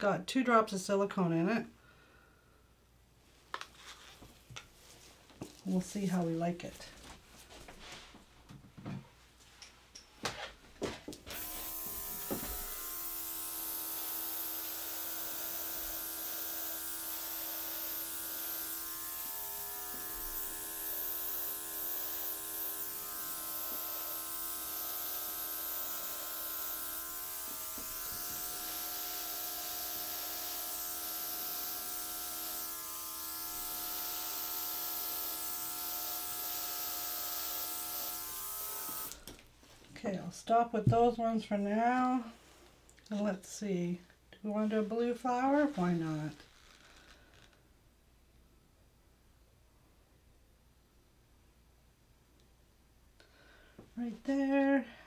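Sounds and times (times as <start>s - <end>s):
airbrush motor with air hiss: 11.3s - 39.3s.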